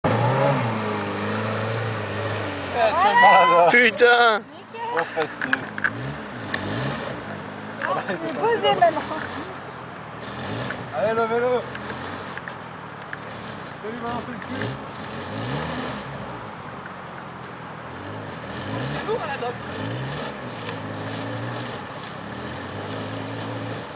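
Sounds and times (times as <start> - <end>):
car engine under load: 0.0 - 23.9.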